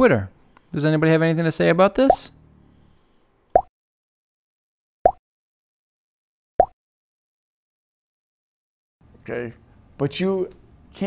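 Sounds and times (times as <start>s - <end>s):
rising pop blips: 3.5s - 3.7s.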